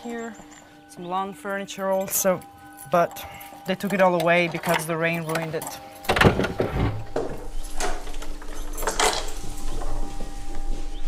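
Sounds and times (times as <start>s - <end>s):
low steady hum: 0.0s - 11.0s
footsteps: 5.6s - 11.0s
wooden door opening: 6.1s - 10.1s.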